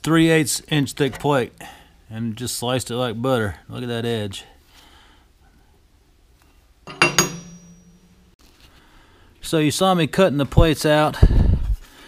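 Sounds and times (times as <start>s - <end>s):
steel plate clanking on metal table: 6.9s - 8.2s.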